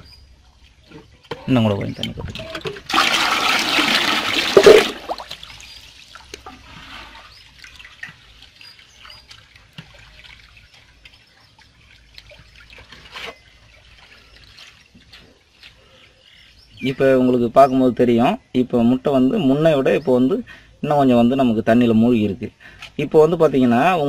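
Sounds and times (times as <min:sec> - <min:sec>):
water splashing in a basin: 0:00.0 - 0:16.6
small splashes and drips: 0:00.0 - 0:16.8.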